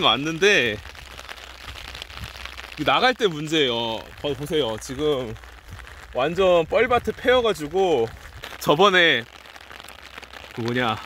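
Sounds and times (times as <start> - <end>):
rain pattering on umbrella: 0.0 - 11.0.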